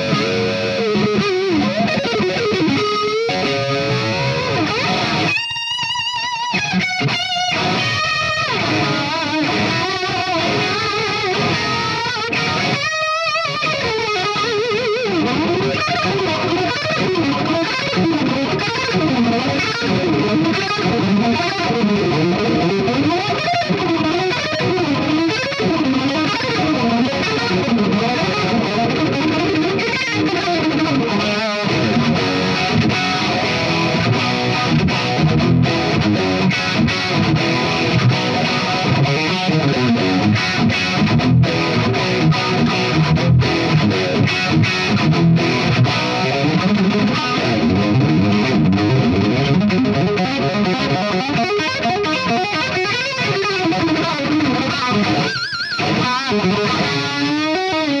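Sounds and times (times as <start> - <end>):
electric guitar through amp: 0.0 - 58.0.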